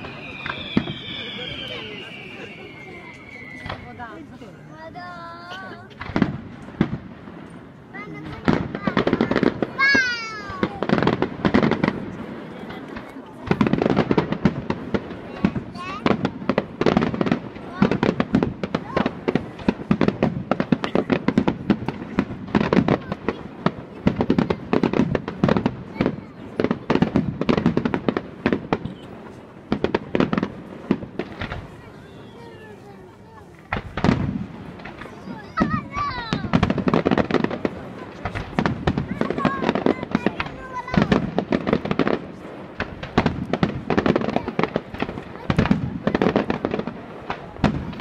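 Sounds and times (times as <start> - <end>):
firework whistle: 0.0 - 4.3
crackling fireworks stars: 0.0 - 48.0
fireworks cracking and banging: 0.0 - 48.0.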